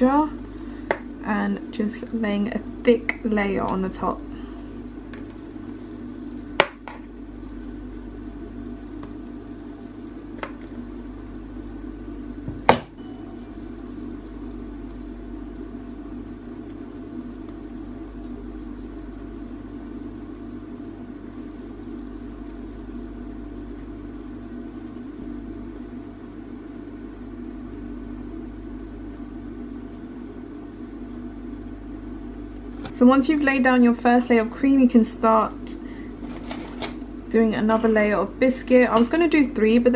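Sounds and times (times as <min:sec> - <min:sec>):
steady low hum: 0:00.0 - 0:39.9.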